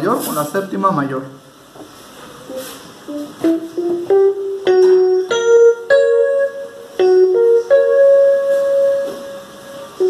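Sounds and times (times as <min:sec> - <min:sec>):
electronic keyboard note: 0:02.4 - 0:10.0.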